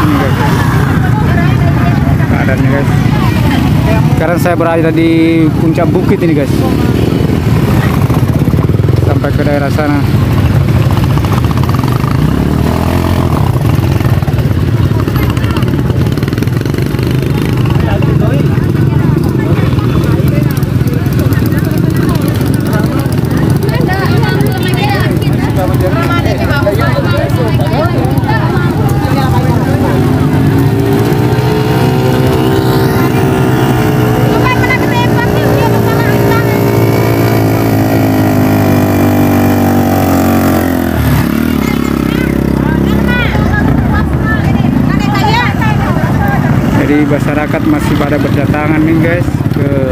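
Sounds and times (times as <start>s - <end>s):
crowd voices: 0.0s - 49.9s
motor scooter engines idling: 0.0s - 49.9s.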